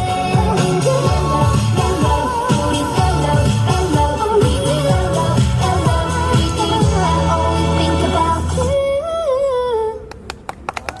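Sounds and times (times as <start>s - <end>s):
sharp claps: 10.1s - 11.0s.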